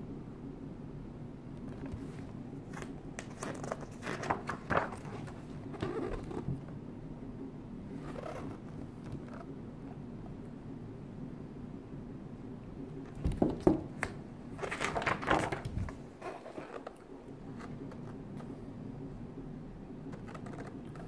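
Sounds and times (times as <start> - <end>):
low room hum: 0.0 - 21.0
book pages turning: 1.6 - 6.6, 14.0 - 18.5, 20.1 - 21.0
paper rustles and clicks: 2.7 - 6.5, 13.2 - 17.0, 20.1 - 21.0.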